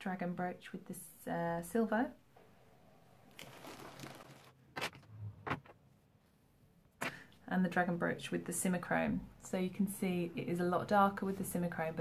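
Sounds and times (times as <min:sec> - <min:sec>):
soft rustle: 0:03.3 - 0:04.6.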